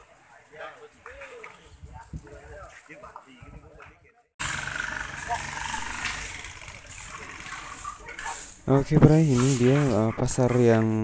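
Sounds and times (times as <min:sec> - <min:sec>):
street noise: 0:00.0 - 0:11.0
vehicle engine humming: 0:04.4 - 0:08.6.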